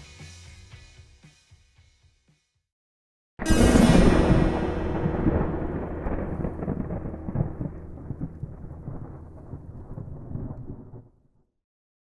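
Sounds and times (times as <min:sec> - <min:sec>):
rolling thunder: 0:03.4 - 0:11.2.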